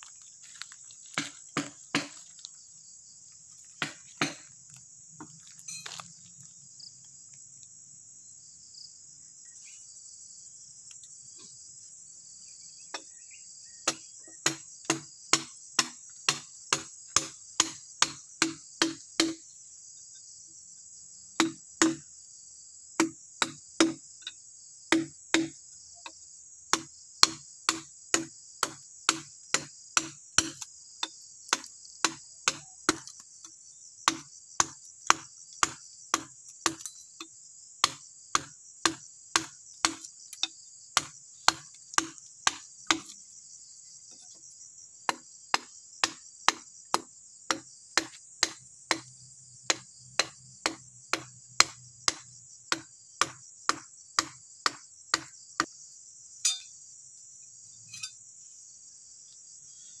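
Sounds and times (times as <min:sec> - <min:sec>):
high-pitched insect chorus: 0:00.0 - 1:00.0
wooden mallet striking metal chisel: 0:01.1 - 0:02.2, 0:03.8 - 0:04.4, 0:24.9 - 0:25.6, 0:26.7 - 0:33.0, 0:56.4 - 0:56.7.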